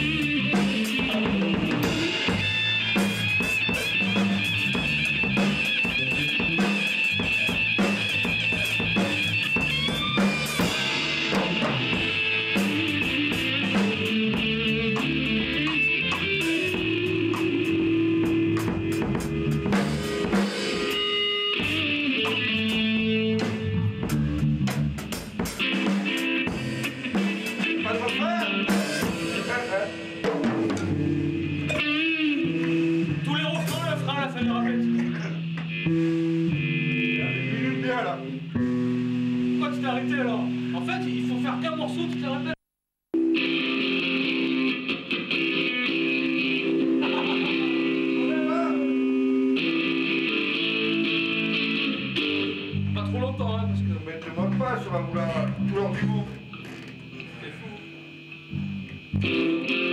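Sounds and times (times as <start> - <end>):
drum kit steady beat: 0.0 - 42.6, 46.6 - 50.4
electric bass: 0.0 - 42.6, 43.2 - 59.9
electric guitar lead lines: 0.0 - 42.6, 43.2 - 59.9.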